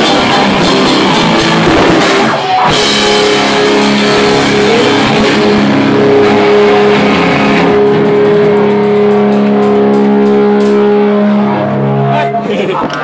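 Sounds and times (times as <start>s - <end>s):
distorted electric guitar chord ringing: 0.0s - 13.0s.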